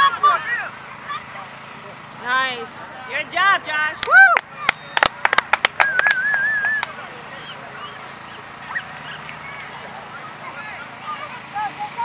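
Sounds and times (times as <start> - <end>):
high whoop: 4.0 - 4.4
spectators clapping: 4.0 - 7.0.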